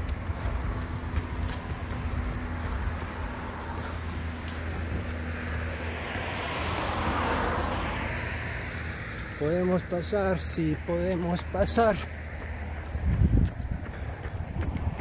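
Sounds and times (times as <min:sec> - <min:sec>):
car passing: 0:00.0 - 0:15.0
low engine hum of traffic: 0:00.0 - 0:15.0.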